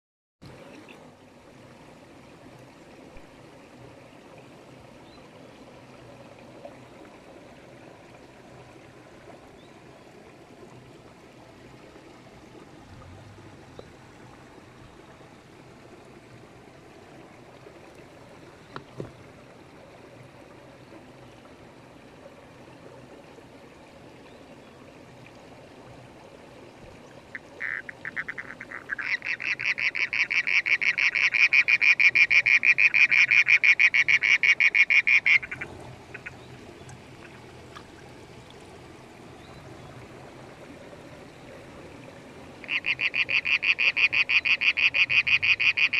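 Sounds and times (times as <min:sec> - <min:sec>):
shallow stream trickling: 0:00.4 - 0:45.9
frog trilling: 0:27.4 - 0:36.4, 0:42.6 - 0:45.9.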